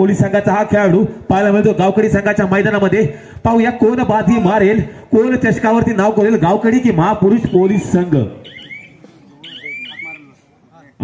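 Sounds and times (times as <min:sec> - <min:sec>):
faint background voices: 0:07.4 - 0:11.0.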